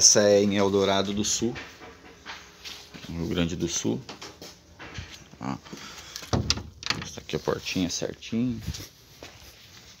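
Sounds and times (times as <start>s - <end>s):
door latch clicks and knocks: 6.2s - 7.2s.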